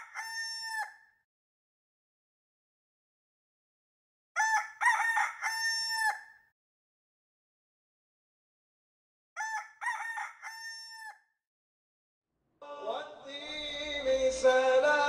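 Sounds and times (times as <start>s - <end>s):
rooster crowing: 0.0s - 1.0s, 4.4s - 6.3s, 9.4s - 11.2s.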